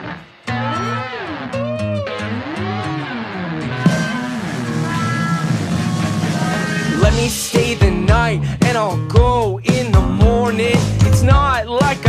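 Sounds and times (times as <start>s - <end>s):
guitar bending low note: 0.0s - 8.3s
rock band playing live: 0.0s - 12.0s.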